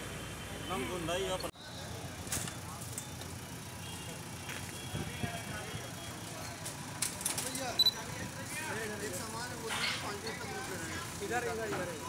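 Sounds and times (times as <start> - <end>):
diesel engine running: 0.0 - 12.0
people talking: 0.5 - 3.2, 4.0 - 12.0.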